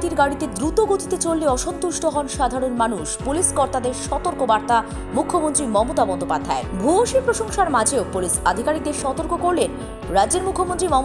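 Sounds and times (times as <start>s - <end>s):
background music with low beat: 0.0s - 11.0s.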